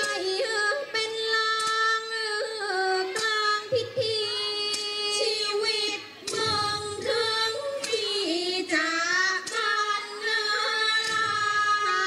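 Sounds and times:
sharp percussion strikes: 6.2s - 12.0s.

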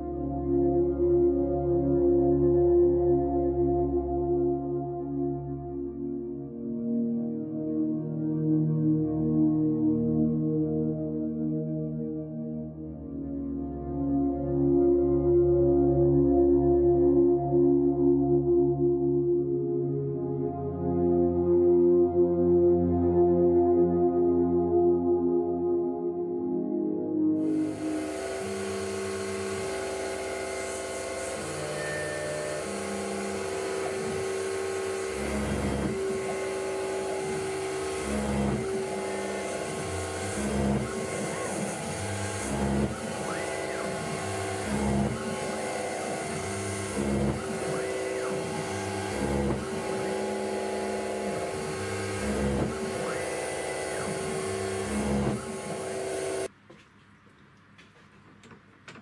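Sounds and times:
milling machine spindle whine: 27.4s - 56.5s.

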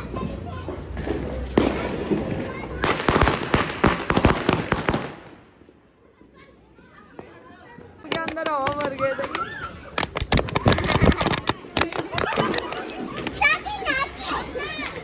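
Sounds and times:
distant fireworks: 0.0s - 5.8s
firecrackers cracking: 0.2s - 5.7s, 8.0s - 13.4s
voices: 5.7s - 15.0s.

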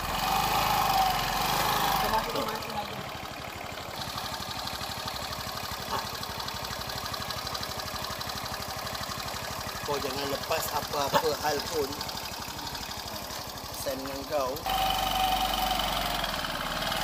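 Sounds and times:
scooter engine idling: 0.0s - 17.0s
voices: 1.9s - 3.9s, 9.8s - 14.8s.

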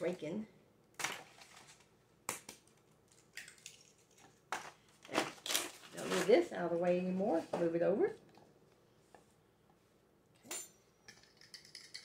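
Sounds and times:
eggshells cracking: 2.3s - 4.5s.

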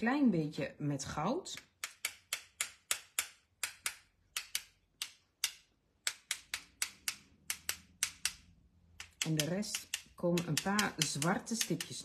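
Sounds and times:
paint marker clicking: 1.6s - 12.0s.

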